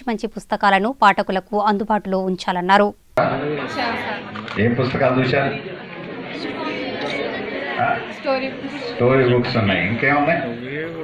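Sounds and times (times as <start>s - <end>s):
man speaking through microphone: 3.2s - 5.6s, 9.0s - 11.0s
indistinct chatter: 3.2s - 11.0s.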